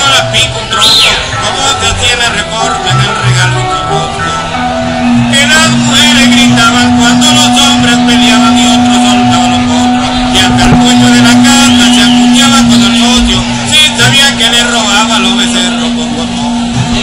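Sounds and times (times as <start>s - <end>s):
man singing long note: 0.0s - 14.6s
background chatter: 0.0s - 17.0s.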